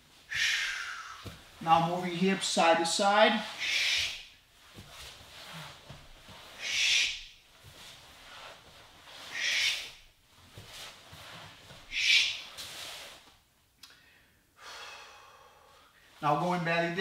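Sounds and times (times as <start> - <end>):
scuffs of movement: 0.1 - 13.4
man breathing out hard: 0.3 - 1.3, 13.9 - 16.0.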